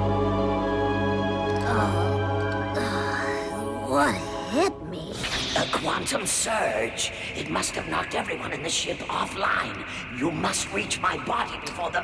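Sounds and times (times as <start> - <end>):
background music score: 0.0 - 7.2
person speaking: 1.6 - 2.2, 2.8 - 8.3.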